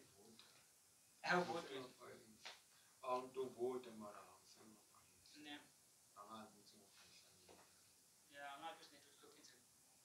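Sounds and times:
man speaking softly: 0.0 - 0.4, 1.2 - 7.7, 8.3 - 9.7.

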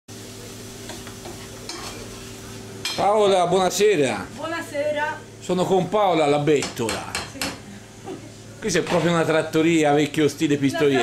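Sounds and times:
food sizzling in a frying pan: 0.1 - 5.6
utensils scraping a pan: 1.2 - 2.3.

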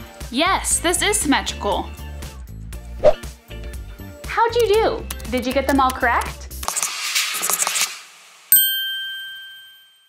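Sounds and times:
bright chime ringing: 8.5 - 10.0.

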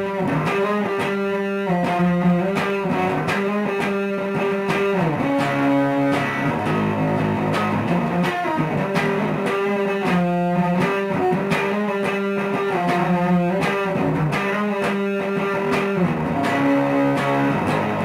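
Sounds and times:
fuzzed electric guitar riff: 0.0 - 18.0.

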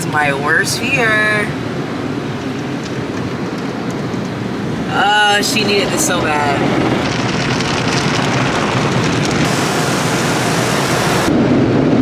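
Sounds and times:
deep rumble: 1.5 - 12.0
water spray beating on car: 6.8 - 11.3.

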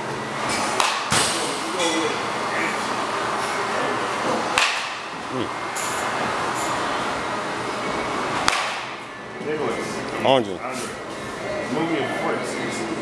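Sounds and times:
baseball bat striking ball: 0.7 - 1.4, 4.5 - 5.1, 8.4 - 9.0.

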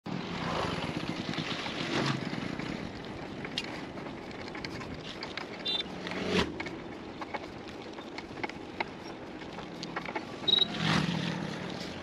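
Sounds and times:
bicycle tyres on asphalt: 0.1 - 12.0
small clicks and rattles: 1.0 - 12.0.

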